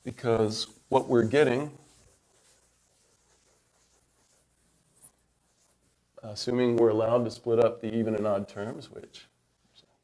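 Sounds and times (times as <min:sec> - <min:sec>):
faint writing sounds: 0:00.0 - 0:10.0.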